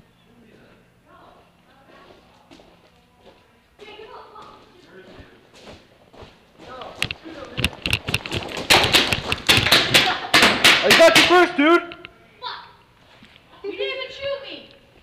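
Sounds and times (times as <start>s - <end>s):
paintball markers firing: 8.3s - 11.4s.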